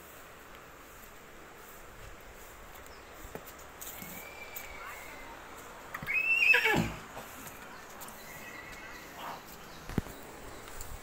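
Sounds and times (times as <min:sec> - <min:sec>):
horse whinnying: 0:06.0 - 0:07.0.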